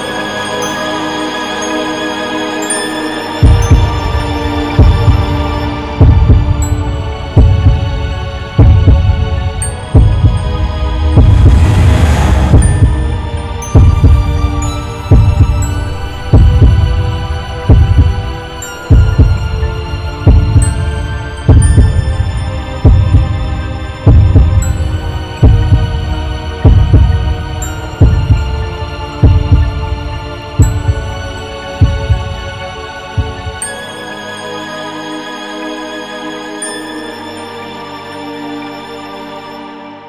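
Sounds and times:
deep heartbeat-like thump: 3.4 - 4.2, 4.8 - 5.4, 6.0 - 18.3, 18.9 - 19.6, 20.2 - 27.4, 28.0 - 28.6, 29.2 - 30.0, 31.8 - 32.4
sustained low drone: 3.4 - 33.7.

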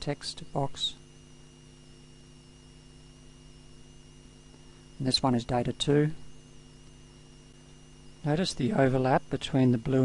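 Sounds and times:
electrical hum: 0.0 - 10.0
thin high whine: 0.0 - 10.0.

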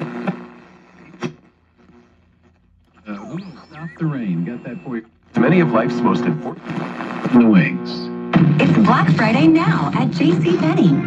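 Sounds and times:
radio hiss: 0.0 - 2.1, 3.0 - 11.0
sharp crackle: 0.1 - 5.4
radio broadcast voice: 3.0 - 11.0.

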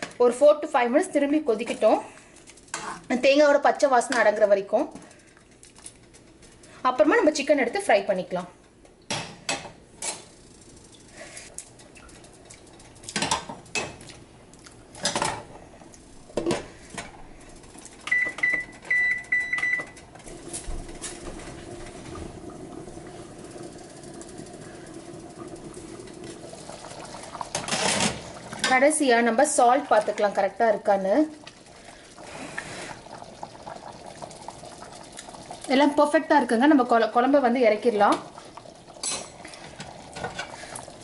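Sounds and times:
low hum of simmering pot: 0.0 - 41.0.

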